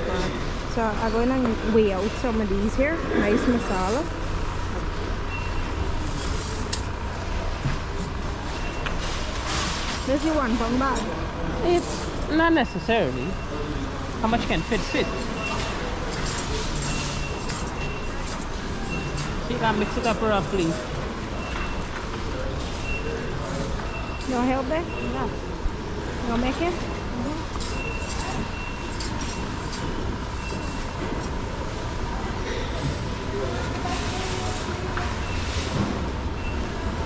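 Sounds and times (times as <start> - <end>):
distant voices: 0.0 - 37.0
shop background hum and hiss: 0.0 - 37.0
steady background noise: 0.0 - 37.0.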